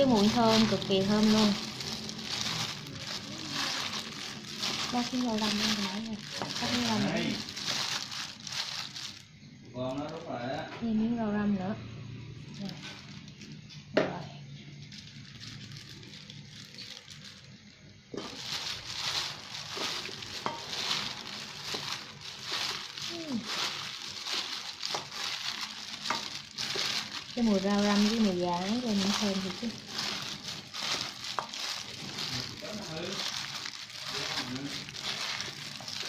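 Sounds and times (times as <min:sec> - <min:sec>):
plastic gloves crinkling: 0:00.0 - 0:10.7, 0:12.3 - 0:36.0
salad tossed in steel bowl: 0:00.1 - 0:09.1, 0:18.2 - 0:36.0.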